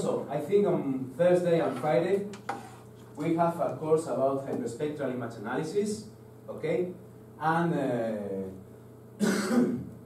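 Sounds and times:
man coughing: 9.2 - 9.9.

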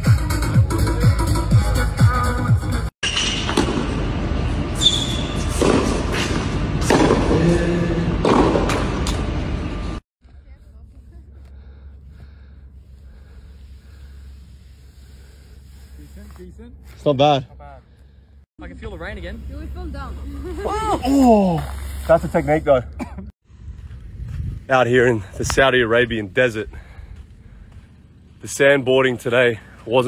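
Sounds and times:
people talking and laughing: 20.0 - 21.7.

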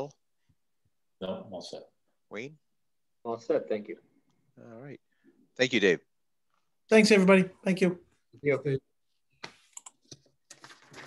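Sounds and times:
faint keyboard typing: 9.4 - 11.0.

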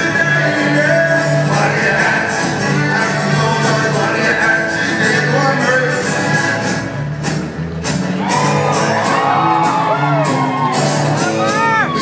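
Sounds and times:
folk-rock band playing live: 0.0 - 12.0
high whoops and shouts: 8.2 - 12.0.

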